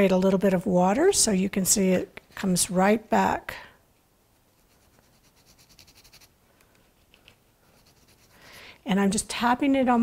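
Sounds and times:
fingertip rubbing scratchy strokes: 0:04.6 - 0:06.4, 0:07.6 - 0:08.4.

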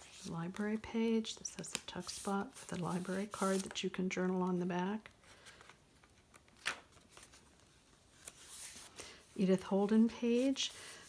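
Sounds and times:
paper rustling and scraping: 0:01.9 - 0:03.8.

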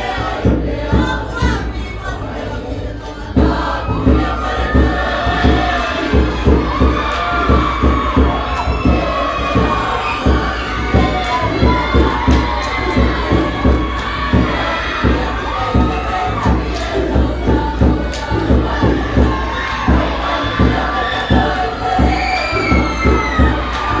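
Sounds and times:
chorus of singing and shouting voices: 0:00.0 - 0:24.0
drum beat of low thumps: 0:00.0 - 0:24.0.

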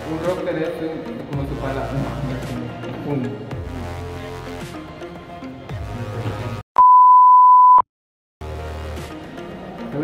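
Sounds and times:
background music: 0:00.0 - 0:06.6, 0:08.4 - 0:10.0
high-pitched test tone beep: 0:06.8 - 0:07.8.

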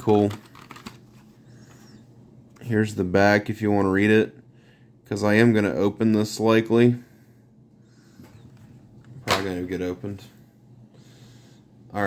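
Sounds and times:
faint handling noise: 0:00.0 - 0:02.7.

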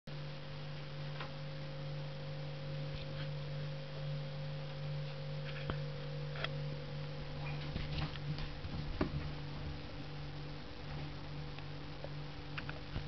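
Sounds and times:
steady low hum: 0:00.1 - 0:13.0.

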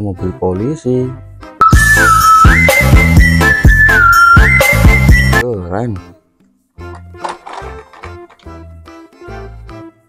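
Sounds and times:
music with steady beat: 0:01.6 - 0:05.4
police siren: 0:01.6 - 0:05.4.

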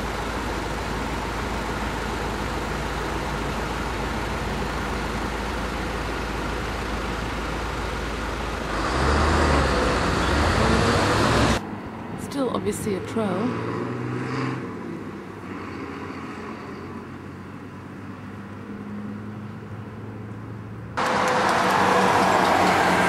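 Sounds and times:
road traffic noise: 0:00.0 - 0:23.0
vehicle engine rumbling: 0:00.0 - 0:23.0.

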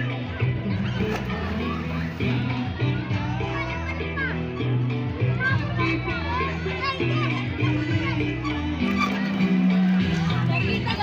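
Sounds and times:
background music with bass line: 0:00.0 - 0:11.0
children shouting: 0:05.4 - 0:10.9.

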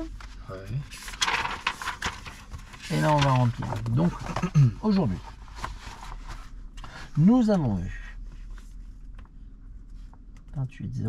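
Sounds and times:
paper rustling: 0:00.1 - 0:07.0.

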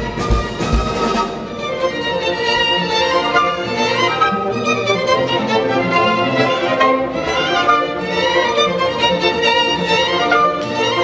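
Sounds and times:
orchestra with bowed strings: 0:00.0 - 0:11.0.

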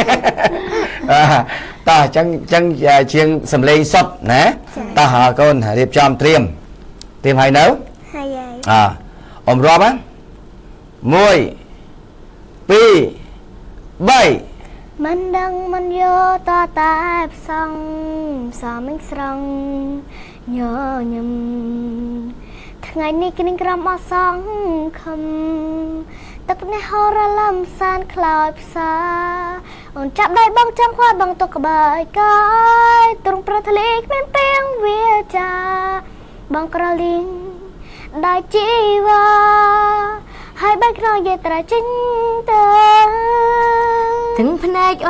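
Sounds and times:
woman singing: 0:15.0 - 0:45.0.

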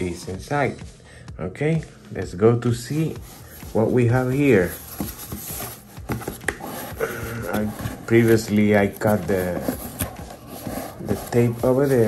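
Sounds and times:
cardboard box flaps scraping: 0:04.4 - 0:12.0.

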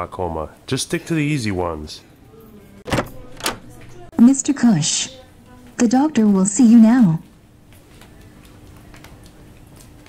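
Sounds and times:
door opening clicks: 0:02.9 - 0:04.1.

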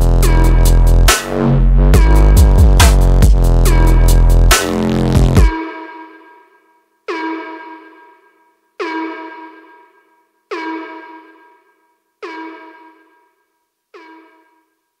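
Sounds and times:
horn-like synth stab: 0:00.0 - 0:05.6.

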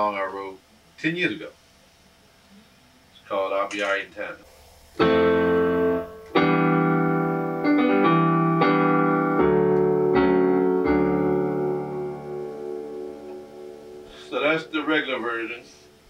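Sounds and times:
piano playing sustained chords: 0:05.0 - 0:16.0.

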